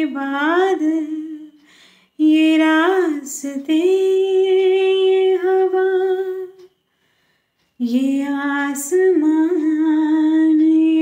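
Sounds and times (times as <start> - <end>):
woman singing: 0.0 - 6.8, 7.8 - 11.0.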